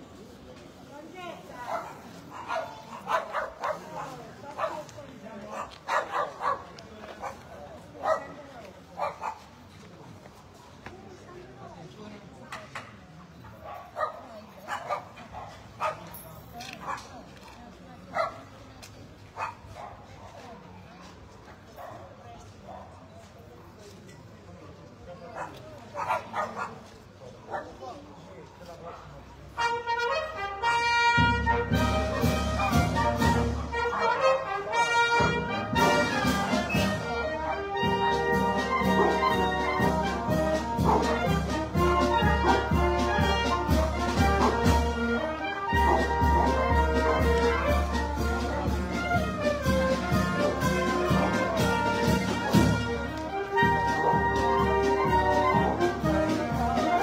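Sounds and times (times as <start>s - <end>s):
faint voices: 0.0s - 57.0s
dog barking: 1.6s - 4.9s, 5.5s - 7.4s, 8.0s - 8.4s, 9.0s - 9.5s, 13.6s - 16.1s, 18.1s - 18.4s, 19.4s - 20.4s, 25.4s - 26.8s, 33.7s - 34.4s, 40.8s - 41.2s, 45.8s - 47.3s
brass band playing: 29.5s - 57.0s.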